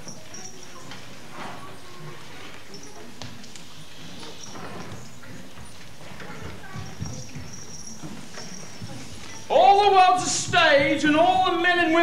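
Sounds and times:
soft shuffles and knocks: 0.0 - 11.6
man calling out loudly: 9.5 - 12.0.

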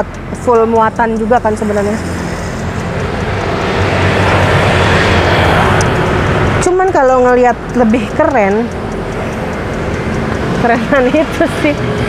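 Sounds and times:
person speaking: 0.0 - 2.2, 6.6 - 8.8
vehicle engine and road noise: 0.0 - 12.0.

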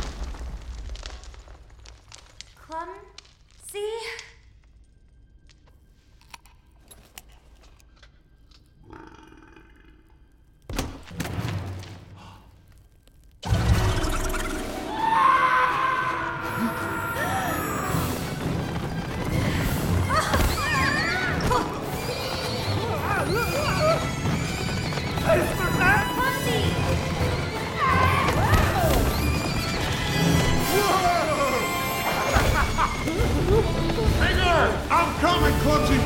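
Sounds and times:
film score music: 2.6 - 36.0
creatures squealing: 20.1 - 26.1.

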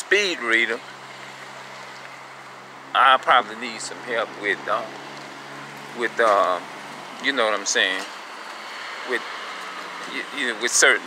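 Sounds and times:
street traffic hiss: 0.0 - 11.0.

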